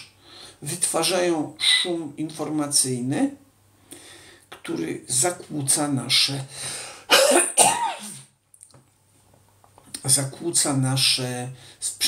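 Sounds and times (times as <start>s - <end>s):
man coughing: 7.1s - 8.3s.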